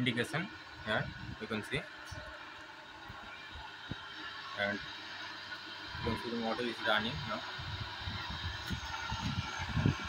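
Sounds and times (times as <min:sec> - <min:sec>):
electric motor humming: 0:00.0 - 0:10.0.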